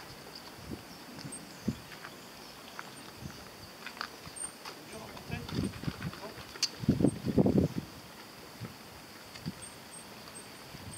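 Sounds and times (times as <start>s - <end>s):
footsteps on paved path: 0.0s - 10.5s.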